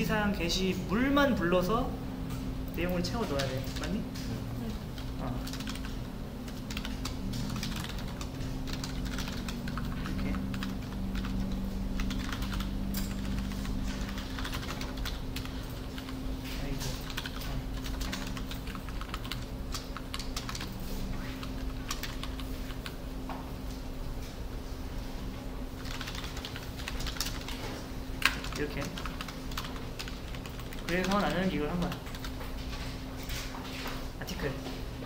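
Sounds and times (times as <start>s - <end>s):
steady low hum: 0.0s - 35.0s
typing on computer keyboard: 5.0s - 16.2s, 16.8s - 23.0s, 25.8s - 32.4s.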